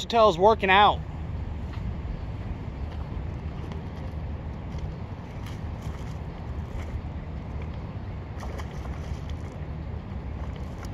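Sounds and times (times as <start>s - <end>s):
wind buffeting microphone: 1.0s - 10.9s.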